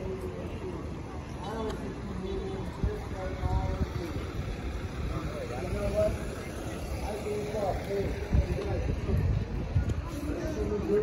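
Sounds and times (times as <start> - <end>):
passers-by talking: 0.0 - 11.0.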